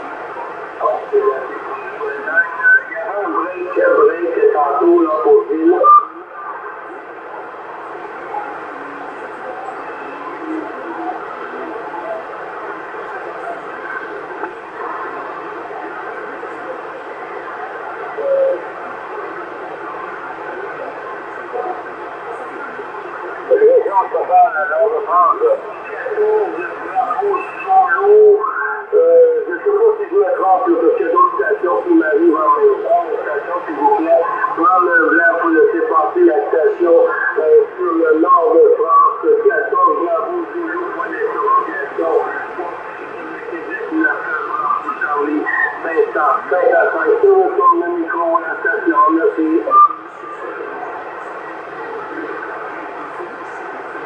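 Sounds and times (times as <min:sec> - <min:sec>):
garbled radio voices: 0:00.0 - 0:54.0
radio static hiss: 0:00.0 - 0:54.0.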